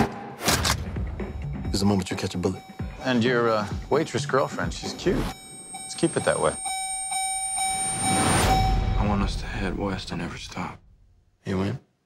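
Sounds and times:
low rumble: 0:08.5 - 0:11.4.

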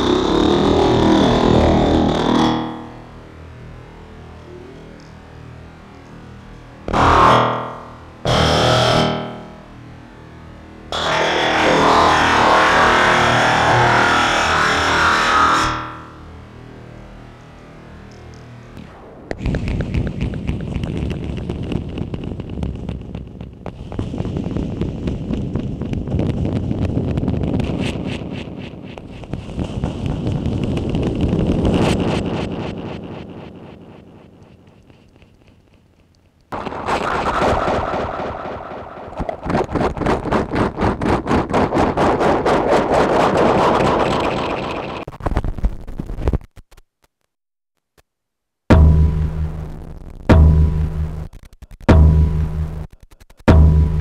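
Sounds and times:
distorted tapping and scraping noise: 0:00.0 - 0:03.1, 0:06.8 - 0:09.5, 0:11.0 - 0:16.1, 0:18.8 - 0:48.1, 0:48.7 - 0:54.0
loud pulsing noise: 0:00.0 - 0:45.1, 0:48.7 - 0:54.0
loud noise burst: 0:06.8 - 0:16.6, 0:18.8 - 0:34.4, 0:36.5 - 0:45.1, 0:48.7 - 0:54.0.

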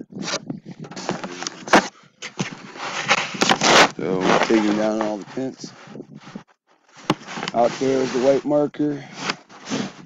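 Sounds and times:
rubbing on camera microphone: 0:00.0 - 0:10.0.

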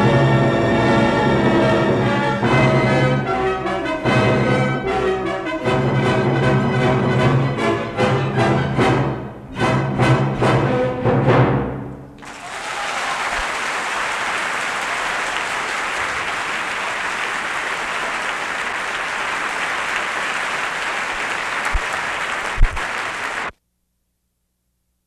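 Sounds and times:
audience applauding: 0:12.2 - 0:23.5.

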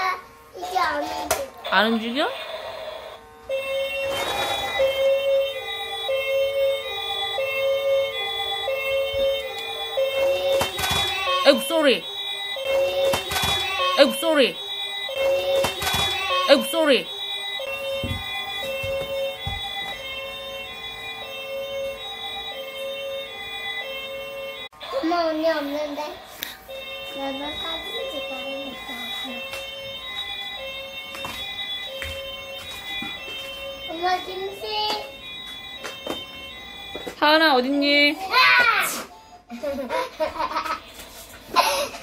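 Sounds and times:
toy siren two-tone wail: 0:01.8 - 0:25.1, 0:26.7 - 0:37.4.

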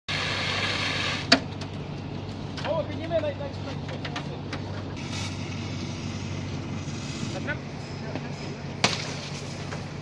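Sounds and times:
fire extinguisher hissing: 0:00.1 - 0:01.3, 0:05.0 - 0:07.5.

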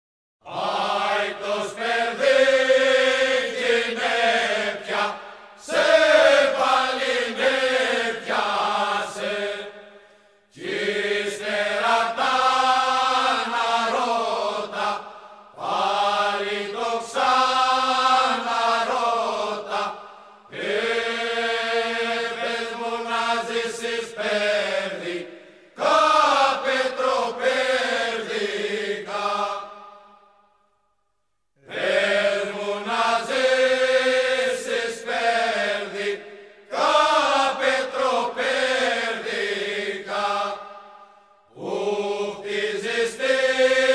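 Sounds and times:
men's choir singing unaccompanied: 0:00.5 - 0:30.2, 0:31.6 - 0:43.9.

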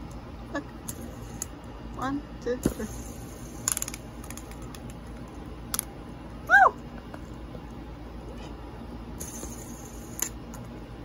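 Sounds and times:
plastic fidget spinner clicks: 0:03.6 - 0:05.0.

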